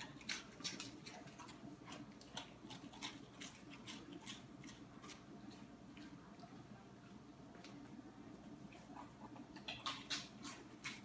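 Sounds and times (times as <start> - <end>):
dog crunching crackers: 0.0 - 6.7, 8.7 - 11.0.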